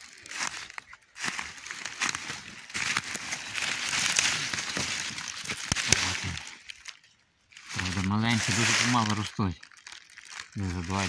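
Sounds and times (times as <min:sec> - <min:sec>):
dry leaves rustling and crackling: 0:00.0 - 0:11.0.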